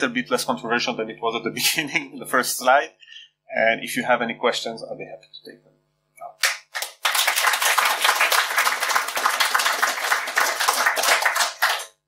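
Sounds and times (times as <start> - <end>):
audience applauding: 6.4 - 12.0.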